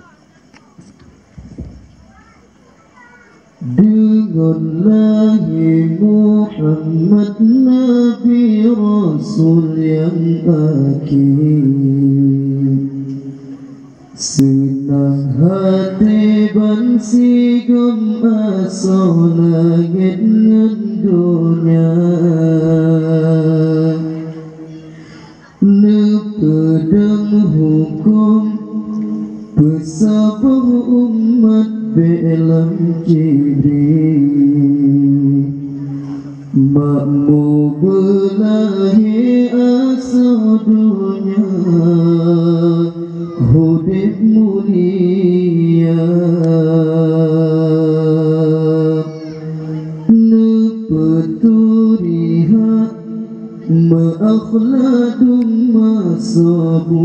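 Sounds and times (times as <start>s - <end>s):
man singing into a microphone: 3.5s - 57.0s.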